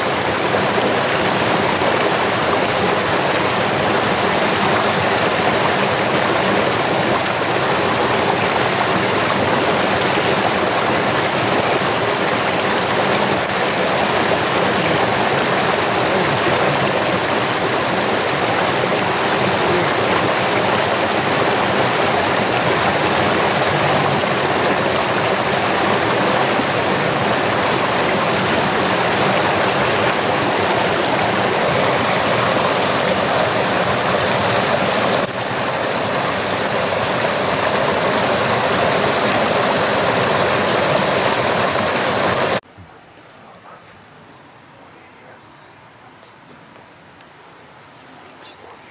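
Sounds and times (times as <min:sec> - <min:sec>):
stream rushing over rocks: 0:00.0 - 0:42.6.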